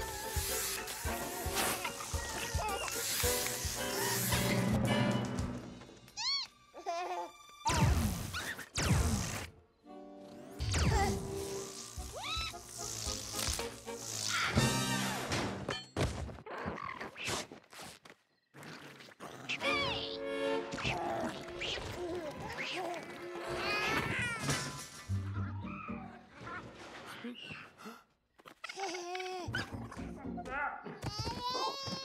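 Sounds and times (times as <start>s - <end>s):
music: 0.0s - 15.7s, 19.6s - 26.8s, 29.4s - 30.9s.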